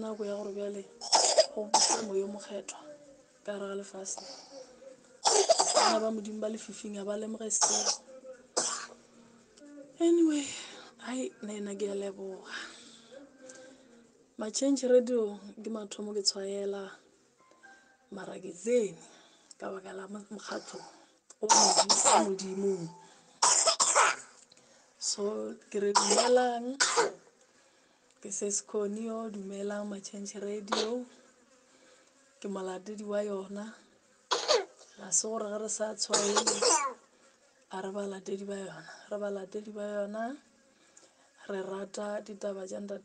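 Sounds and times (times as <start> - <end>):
person coughing: 1.0 - 2.2, 5.2 - 6.0, 7.6 - 8.0, 8.6 - 9.0, 21.5 - 22.4, 23.4 - 24.3, 26.0 - 27.2, 34.3 - 34.7, 36.1 - 37.0
person's voice: 9.2 - 17.0, 19.6 - 23.1, 35.2 - 36.9.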